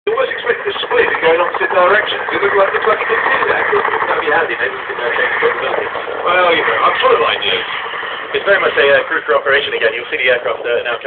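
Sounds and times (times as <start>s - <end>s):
commentator talking over radio: 0.1s - 11.0s.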